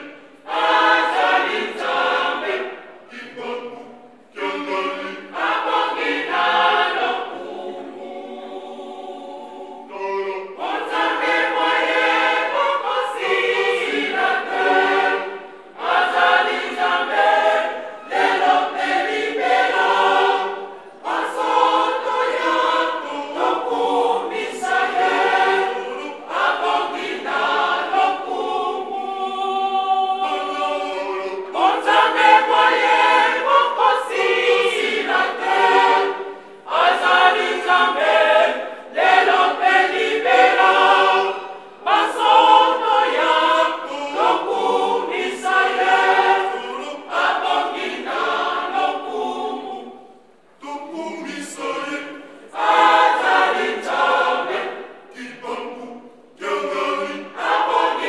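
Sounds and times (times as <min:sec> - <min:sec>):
choir singing unaccompanied: 0:00.0 - 0:58.0.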